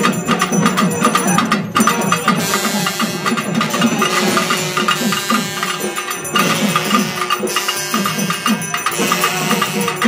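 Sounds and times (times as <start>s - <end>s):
drums playing steady rhythm: 0.0s - 10.0s
other percussion: 0.0s - 10.0s.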